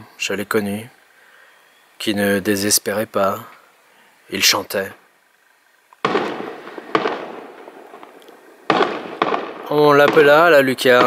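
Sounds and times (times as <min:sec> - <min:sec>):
firework crackling: 0:05.9 - 0:11.0
firework shells bursting: 0:06.0 - 0:11.0.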